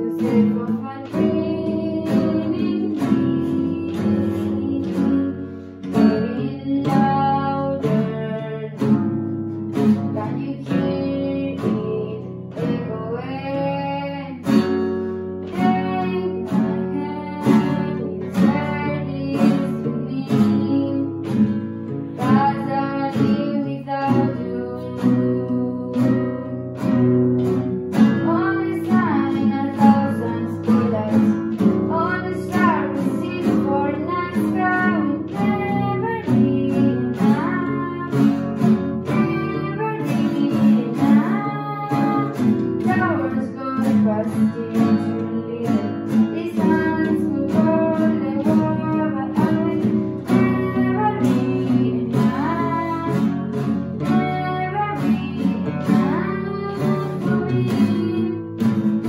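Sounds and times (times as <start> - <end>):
classical guitar strummed chords: 0.0 - 59.0
person singing: 0.0 - 59.0.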